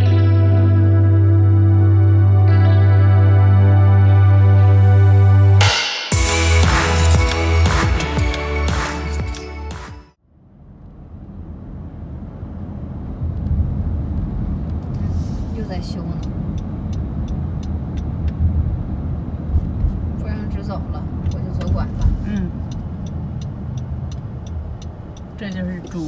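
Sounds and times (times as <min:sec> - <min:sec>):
car cabin road rumble: 0:10.3 - 0:26.0
light regular ticking: 0:15.8 - 0:18.4, 0:21.0 - 0:26.0.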